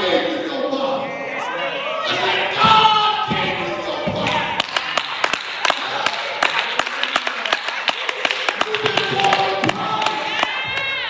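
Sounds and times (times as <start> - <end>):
haze of voices: 0.0 - 11.0
hand claps: 4.6 - 10.9.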